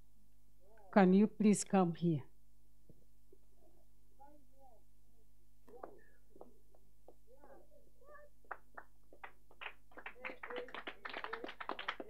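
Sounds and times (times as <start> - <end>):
faint distant voices: 3.3 - 12.0
hand claps: 5.7 - 12.0
quiet applause: 5.7 - 12.0.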